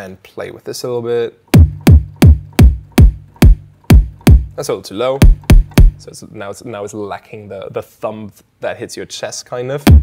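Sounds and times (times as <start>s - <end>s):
synthesized kick drum: 1.5s - 4.6s, 5.2s - 6.0s.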